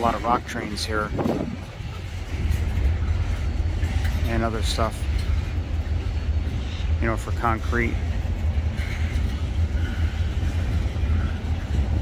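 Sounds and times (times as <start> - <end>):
freight train rolling past: 0.0 - 12.0.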